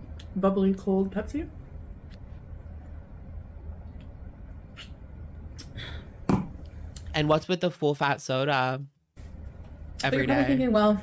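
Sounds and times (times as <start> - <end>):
low steady hum: 0.0 - 7.5.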